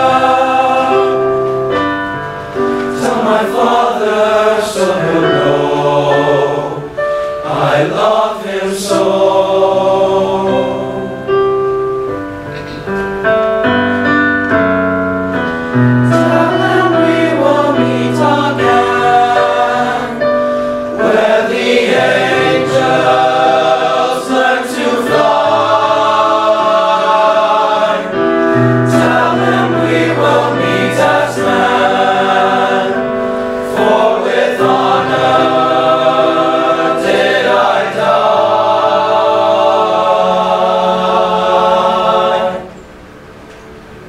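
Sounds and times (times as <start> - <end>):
boys' choir singing in harmony: 0.0 - 11.7, 15.6 - 43.4.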